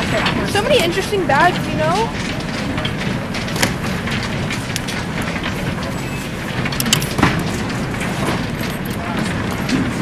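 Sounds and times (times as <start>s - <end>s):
baggage carousel rumbling: 0.0s - 10.0s
sharp clacks: 0.0s - 10.0s.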